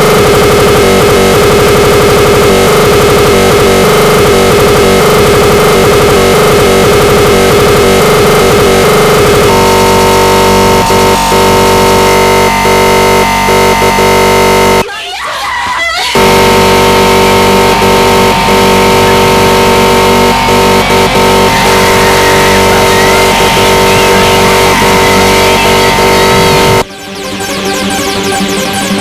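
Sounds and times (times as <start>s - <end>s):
noisy electronic music: 0.0s - 29.0s.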